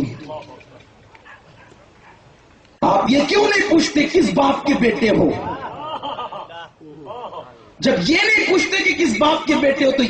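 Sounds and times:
faint distant sounds: 0.0 - 10.0
man speaking: 2.8 - 5.8, 6.4 - 10.0.

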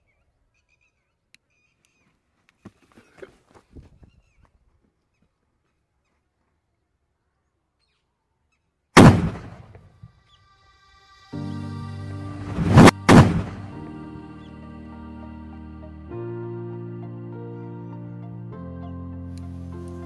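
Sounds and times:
faint scuffs: 1.9 - 6.6
loud firecracker blast: 9.0 - 9.8, 12.5 - 13.8.

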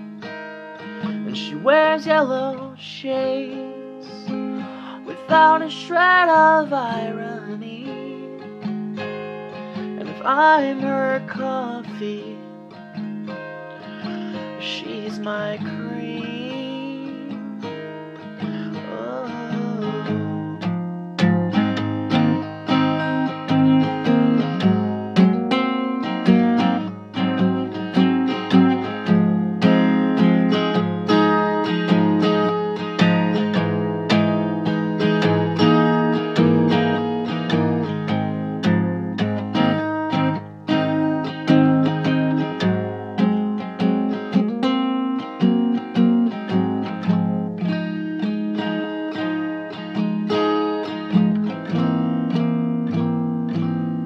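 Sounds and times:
acoustic guitar strumming: 0.0 - 54.0.

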